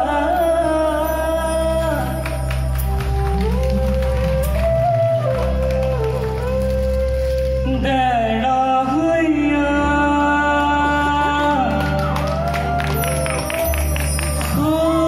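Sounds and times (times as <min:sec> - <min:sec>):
person singing folk song: 0:07.6 - 0:13.0, 0:14.3 - 0:15.0.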